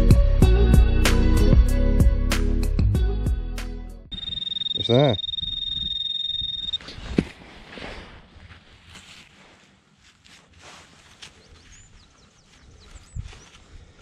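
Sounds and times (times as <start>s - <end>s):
pinpointer buzzing high tone: 4.1s - 6.8s
soil rustling in gloved hands: 6.7s - 14.0s.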